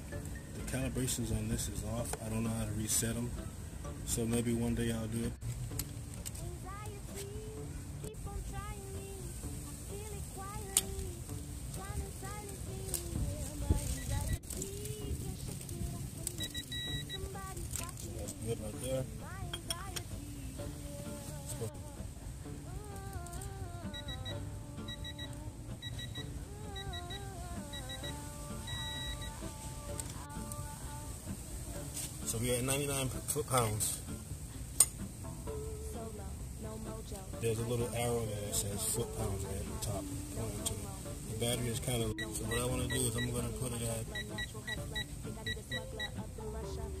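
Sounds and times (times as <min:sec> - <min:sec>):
background music: 0:00.0 - 0:47.0
long electronic tone: 0:16.4 - 0:17.3, 0:23.8 - 0:29.5
short electronic beeps: 0:16.4 - 0:17.3, 0:23.9 - 0:29.4, 0:42.1 - 0:43.5, 0:44.1 - 0:46.1.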